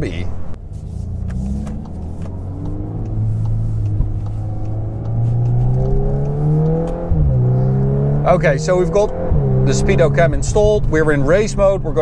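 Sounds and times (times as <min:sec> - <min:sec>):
car engine accelerating: 0:00.3 - 0:12.0.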